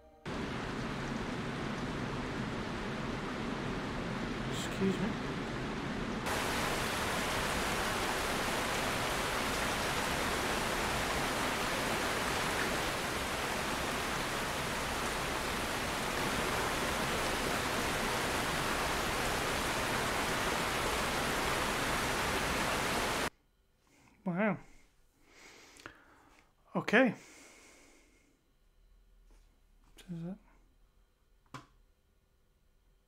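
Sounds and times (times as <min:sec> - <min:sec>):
steady rushing noise: 0:00.3 - 0:23.3.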